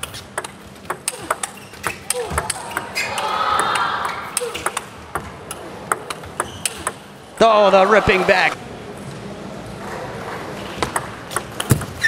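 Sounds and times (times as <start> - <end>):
table tennis ball clicks: 0.0 - 3.0, 3.6 - 7.0, 10.8 - 12.0.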